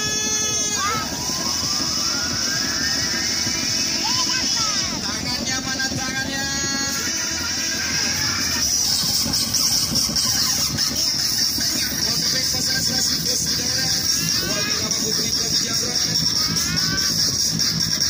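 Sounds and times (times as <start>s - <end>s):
rising whistling tone: 0.0s - 4.7s
music: 0.0s - 18.0s
people's voices: 0.0s - 18.0s.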